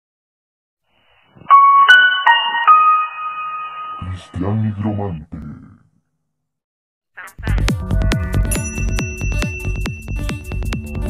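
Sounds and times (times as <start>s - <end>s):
chime-like intro jingle: 1.5s - 4.3s, 8.5s - 10.9s.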